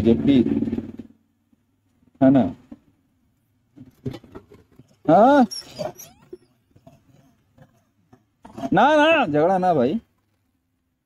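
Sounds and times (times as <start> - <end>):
monkey call: 5.4 - 6.6.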